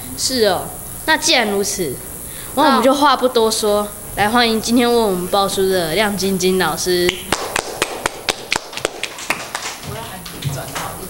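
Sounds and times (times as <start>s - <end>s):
hands clapping: 7.0s - 11.0s.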